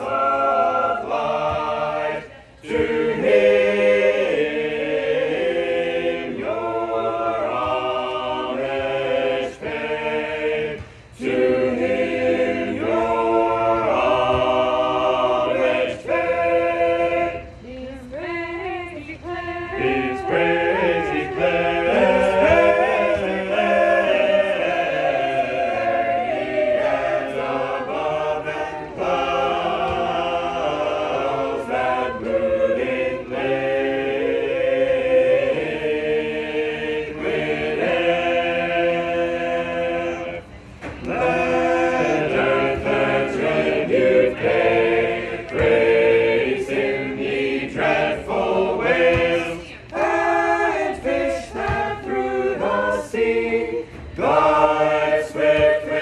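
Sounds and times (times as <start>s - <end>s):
choir singing a hymn unaccompanied: 0.0s - 56.0s.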